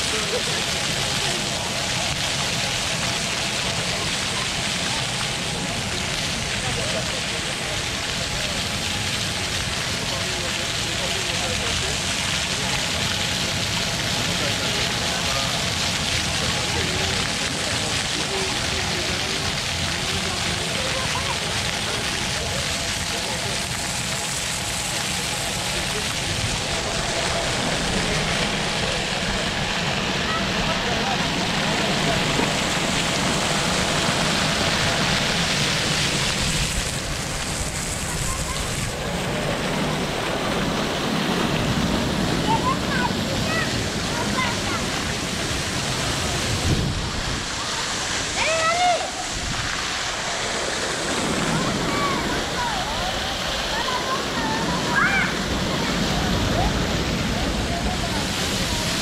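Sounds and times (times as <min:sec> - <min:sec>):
fountain jets splashing: 0:00.0 - 0:59.0
people chattering: 0:00.0 - 0:59.0
wind rumble on microphone: 0:44.9 - 0:48.1.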